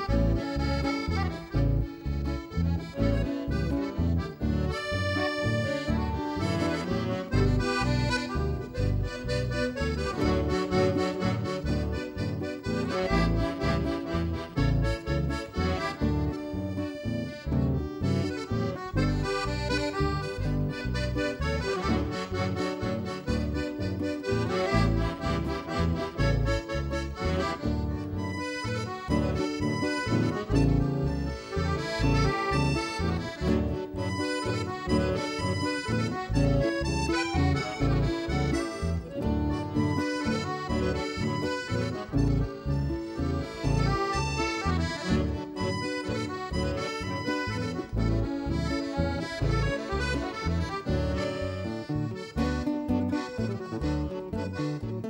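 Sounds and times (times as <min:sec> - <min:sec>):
electric bass: 0:00.0 - 0:55.0
piano accordion melody: 0:00.0 - 0:55.0
strummed acoustic guitar: 0:00.0 - 0:55.0.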